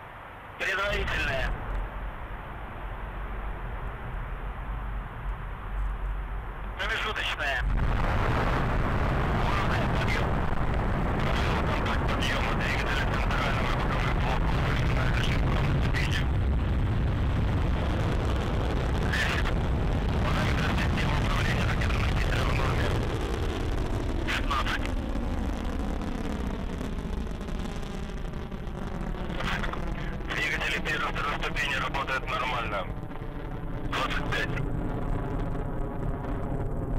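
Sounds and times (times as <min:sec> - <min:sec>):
rocket engines rumbling: 0:00.0 - 0:36.9.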